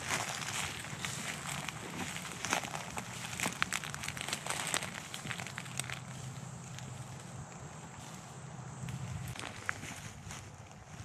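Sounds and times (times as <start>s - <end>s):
footsteps crunching through dry leaves: 0.0s - 11.0s.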